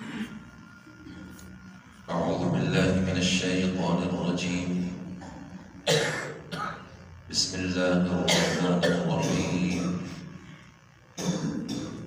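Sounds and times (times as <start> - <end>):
man speaking: 2.1 - 5.2, 7.3 - 10.3
man coughing: 5.1 - 7.0, 8.2 - 10.3, 11.2 - 12.0.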